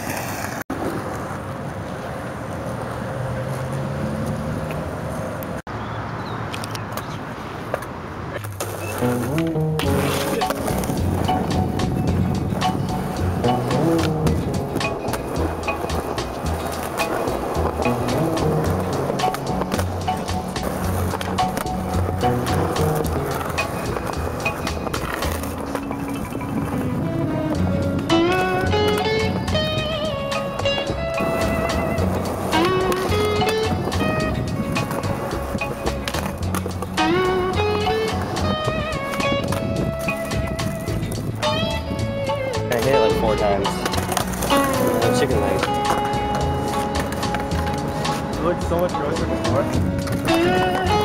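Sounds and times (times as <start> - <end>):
skateboard clacking on curb: 0.0 - 3.0, 6.5 - 51.0
skateboard wheels rolling on concrete: 0.0 - 51.0
background music: 9.0 - 51.0.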